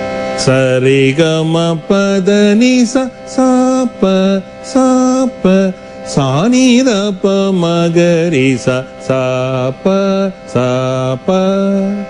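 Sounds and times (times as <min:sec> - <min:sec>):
faint steady tone: 0:00.0 - 0:12.0
man singing syllables: 0:00.3 - 0:12.0.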